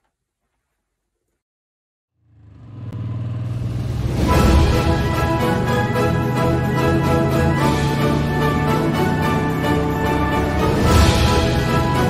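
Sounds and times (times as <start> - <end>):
motorcycle engine rumble: 2.2 - 6.4
music: 4.0 - 12.0.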